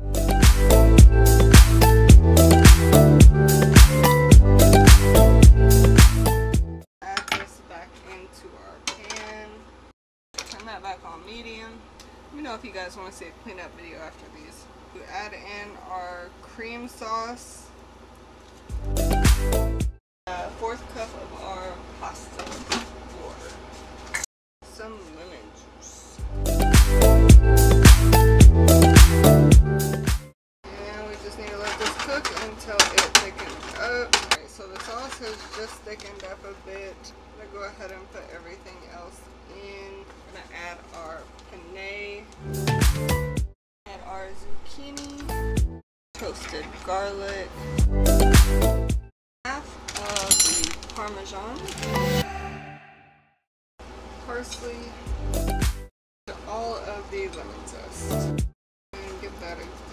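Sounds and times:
background music: 0.0 - 6.8, 26.3 - 30.3
knife and fork on cutting board: 31.6 - 36.1.

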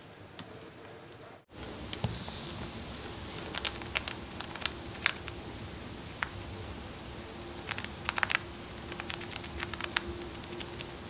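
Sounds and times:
chipmunk chewing seeds: 1.6 - 11.0.

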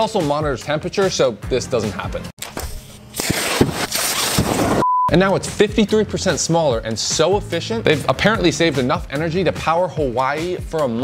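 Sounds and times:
test tone beep: 4.8 - 5.2.

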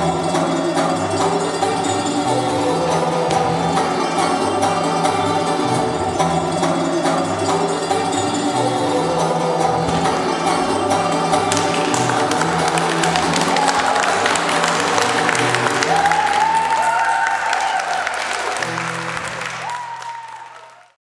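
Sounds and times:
background music: 0.0 - 20.9
audience applauding: 11.5 - 21.0.

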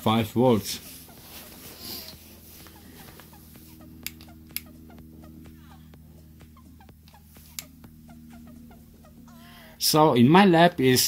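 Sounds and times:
faint steady hum: 0.0 - 11.0
thermometer clicks: 4.0 - 4.7.

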